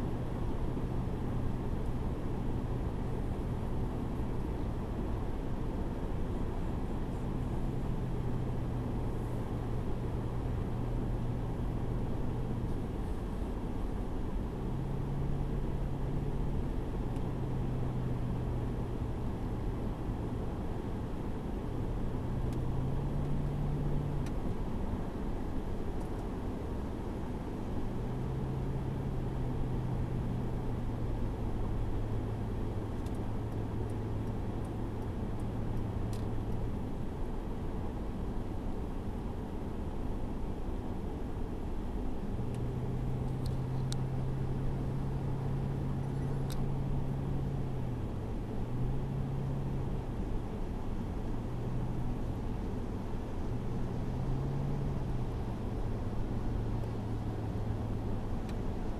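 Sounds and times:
low engine drone: 0.0 - 58.9
tyre and engine rumble: 40.5 - 58.9.

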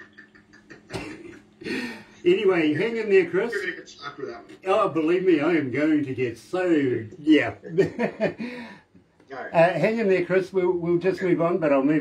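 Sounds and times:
man laughing: 0.0 - 2.1, 7.6 - 8.8
man coughing: 0.8 - 1.8.

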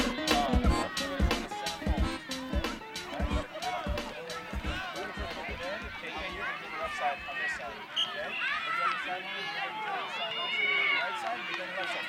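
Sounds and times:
spectators and children calling out: 0.0 - 12.0.

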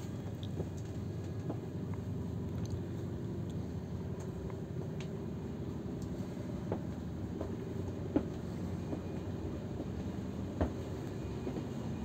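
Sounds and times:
bus engine rumble from inside: 0.0 - 12.0.

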